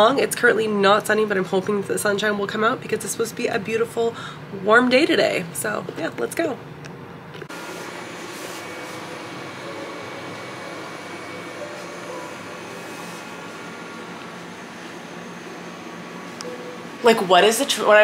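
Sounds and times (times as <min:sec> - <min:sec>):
fan whirring hum: 0:00.0 - 0:18.0.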